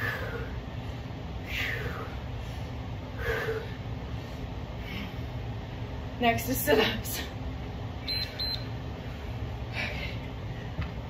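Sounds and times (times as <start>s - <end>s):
low hum: 0.0s - 11.0s
timer beeps: 8.1s - 8.7s.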